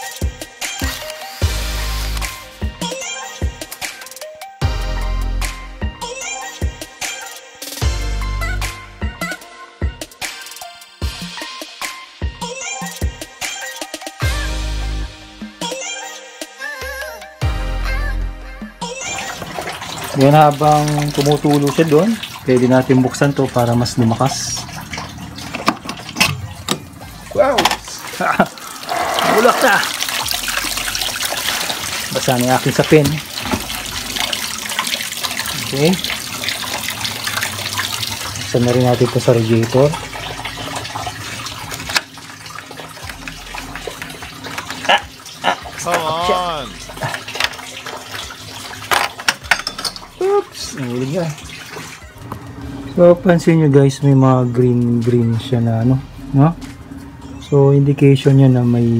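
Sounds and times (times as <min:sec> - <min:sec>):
liquid stream splashing: 0:24.4 - 0:49.3.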